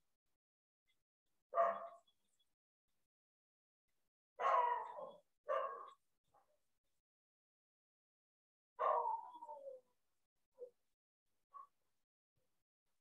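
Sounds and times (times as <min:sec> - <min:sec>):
dog barking: 0:01.5 - 0:02.1, 0:04.4 - 0:06.0, 0:08.8 - 0:09.8.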